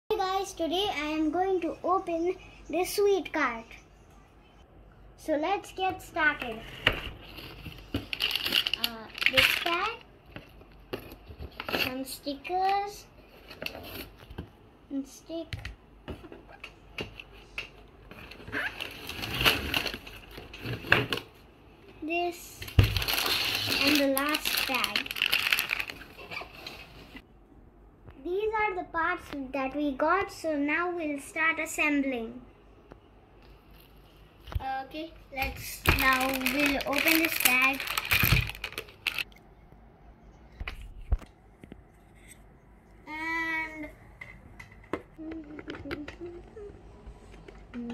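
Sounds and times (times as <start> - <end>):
plastic packaging crinkling: 7.2 - 10.0, 22.7 - 27.1, 35.4 - 39.3.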